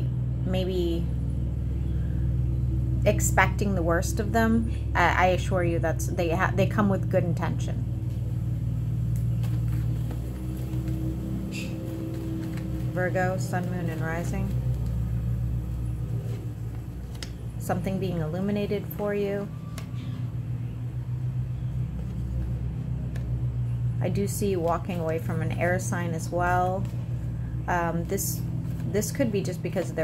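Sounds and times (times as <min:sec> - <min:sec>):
low mechanical rumble: 0:00.0 - 0:30.0
steady low hum: 0:00.0 - 0:30.0.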